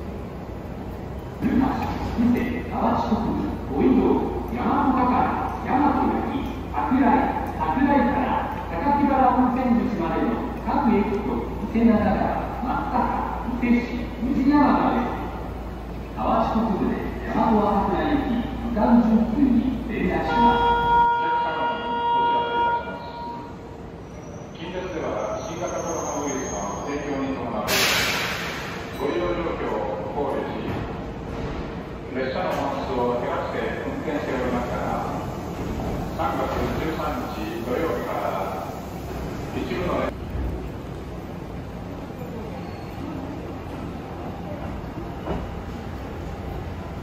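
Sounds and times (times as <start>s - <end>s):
station noise: 1.0s - 23.7s
brief loud train sound: 20.1s - 29.7s
railway signal horn tone: 20.2s - 23.7s.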